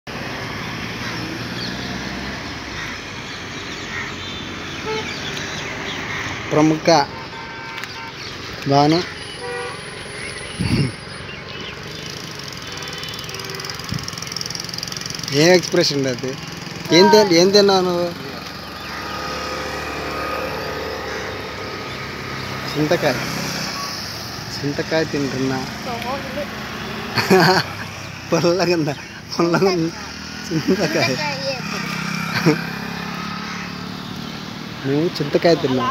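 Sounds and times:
motorcycle engine passing: 11.5 - 35.6.

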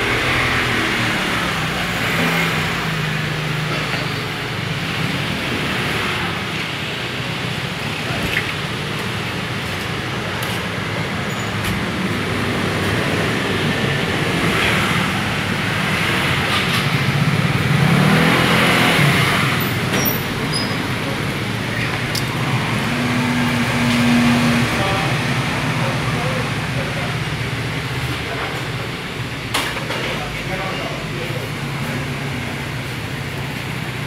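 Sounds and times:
vehicle engines passing: 0.0 - 34.0
voices talking: 18.8 - 32.7.

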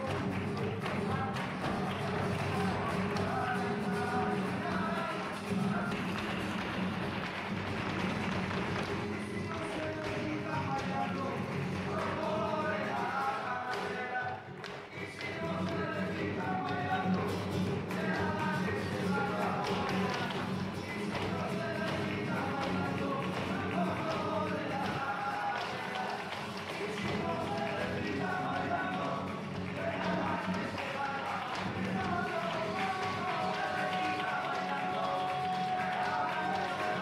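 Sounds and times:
person singing: 0.0 - 6.5, 8.8 - 37.0
dancers stamping on stage: 0.0 - 37.0
guitar: 0.0 - 37.0
hand-clapping: 0.0 - 37.0.

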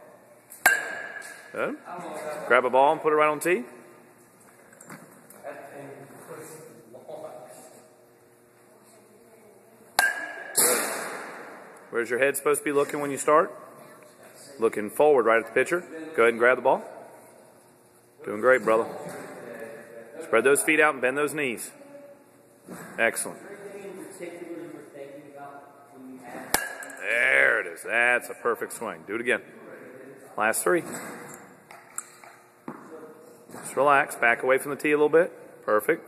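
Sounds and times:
bat hitting ball ping: 0.6 - 1.5, 10.0 - 11.6, 26.5 - 27.0.

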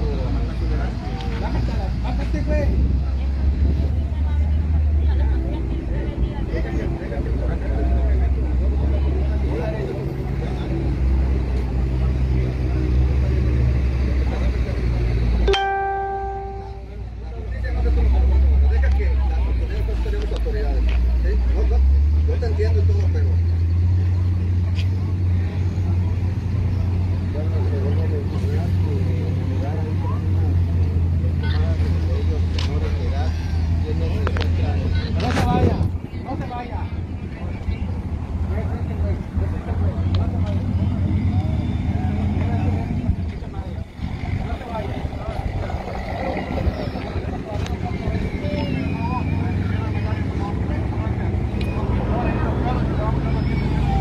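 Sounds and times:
short pitched tone: 15.5 - 17.0
indistinct voices: 17.9 - 54.0.

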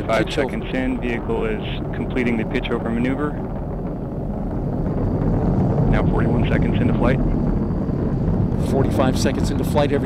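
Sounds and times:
rocket engine rumble: 0.0 - 10.0.

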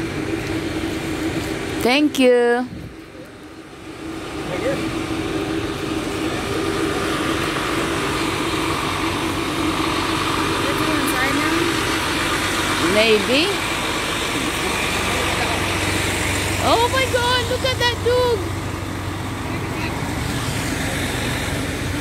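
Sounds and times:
bus engines idling: 0.0 - 22.0.

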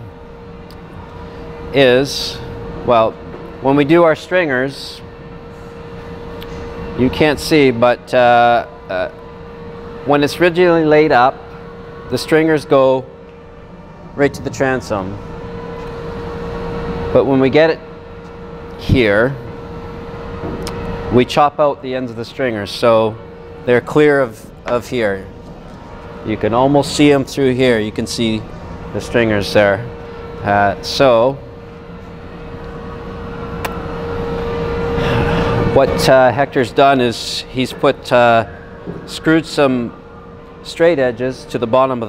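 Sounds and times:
machinery drone: 0.0 - 42.0
steady mechanical hum: 0.0 - 42.0.

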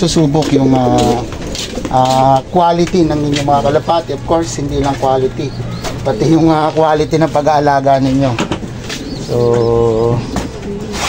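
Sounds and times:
pigeons cooing: 0.0 - 11.0.

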